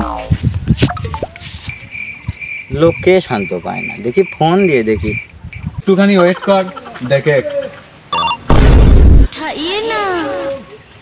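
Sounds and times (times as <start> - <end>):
crickets chirping: 1.2 - 8.5, 9.2 - 11.0.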